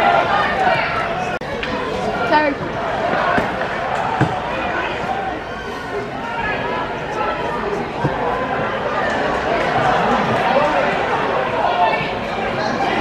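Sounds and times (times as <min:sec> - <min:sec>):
people shouting: 0:00.0 - 0:13.0.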